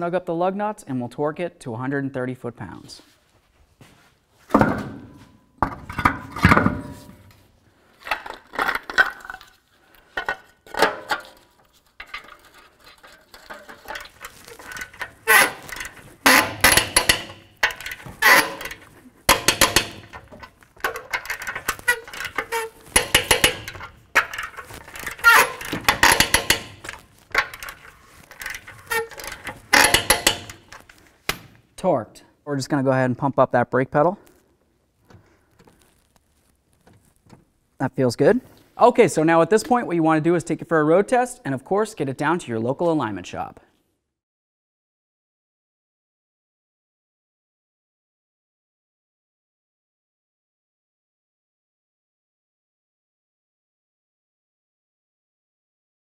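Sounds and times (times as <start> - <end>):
wheel knocking onto hub studs: 10.2 - 31.6.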